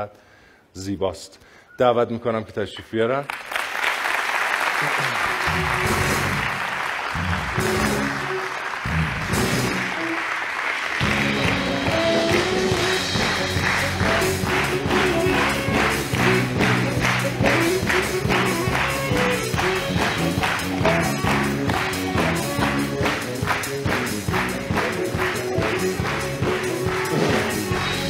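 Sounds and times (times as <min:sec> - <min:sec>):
audience applauding: 0:03.2 - 0:28.0
music with steady beat: 0:11.0 - 0:28.0.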